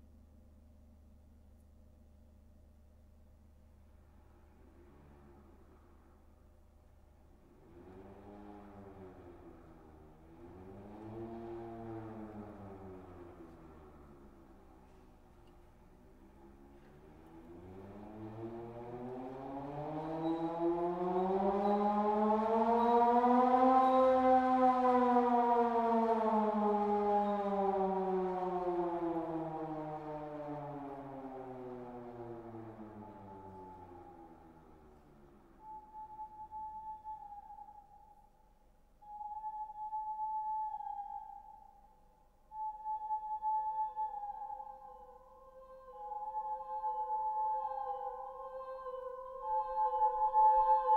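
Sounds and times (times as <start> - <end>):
siren-like electronic tone: 17.5 - 38.0
steady high tone: 42.6 - 50.9.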